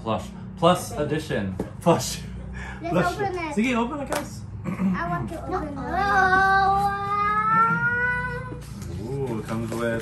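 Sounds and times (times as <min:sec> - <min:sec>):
child's drawn-out ooh: 0:05.8 - 0:08.6.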